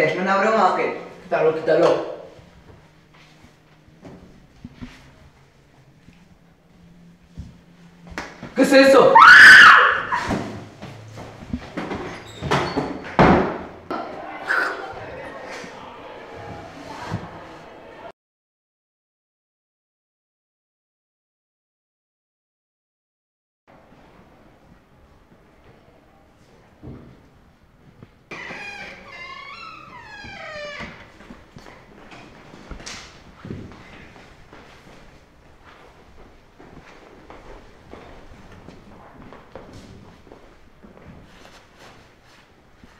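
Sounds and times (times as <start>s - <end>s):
young person screaming: 9.0s - 10.3s.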